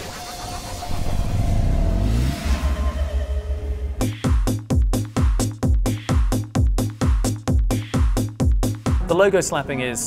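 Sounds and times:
rising synth sweep: 0.0 - 4.7
low electronic rumble: 0.0 - 8.9
dance music beat: 4.0 - 9.1.

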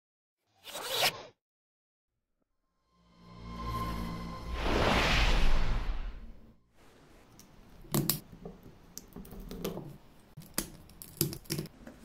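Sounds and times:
noisy swish: 3.1 - 6.6.

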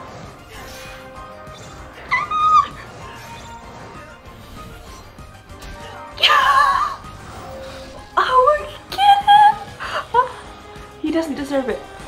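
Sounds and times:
cartoon fight music: 0.0 - 12.0
high-pitched yelp: 2.0 - 2.9.

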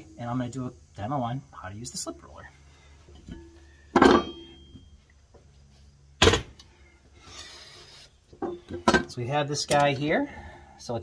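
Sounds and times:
steel clanking on steel: 3.2 - 4.9.

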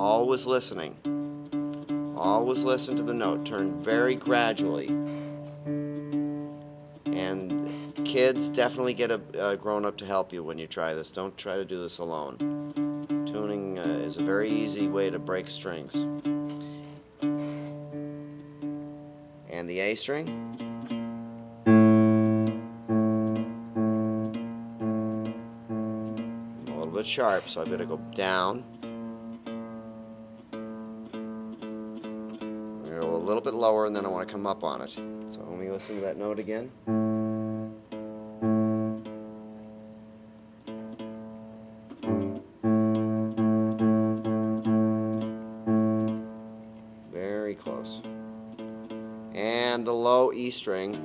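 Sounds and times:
nylon-string guitar string: 0.0 - 51.0
keyboard note struck: 1.0 - 9.5, 20.2 - 33.4, 36.9 - 39.4, 41.9 - 49.4.

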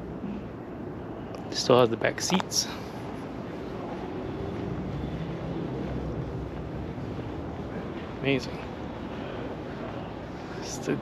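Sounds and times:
low rumble of hall background noise: 0.0 - 11.0.

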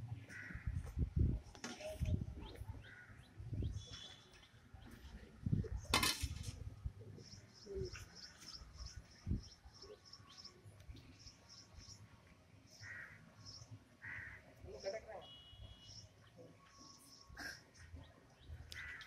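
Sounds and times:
crow cawing: 0.3 - 0.7, 12.8 - 13.2, 14.0 - 14.4, 18.8 - 19.0.

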